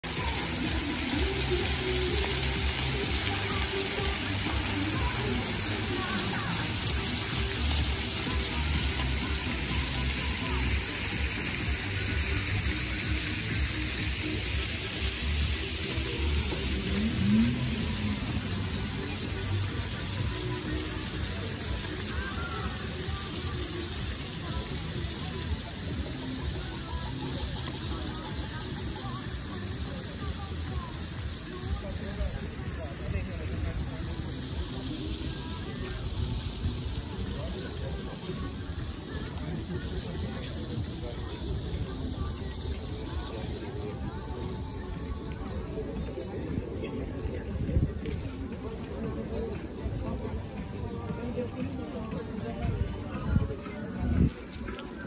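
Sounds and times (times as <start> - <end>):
fountain water jets splashing: 0.0 - 55.0
people chattering: 0.0 - 55.0.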